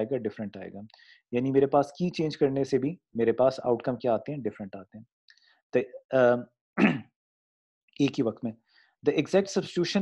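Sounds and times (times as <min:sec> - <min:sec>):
man lecturing: 0:00.0 - 0:05.1, 0:05.7 - 0:06.6, 0:08.0 - 0:10.0.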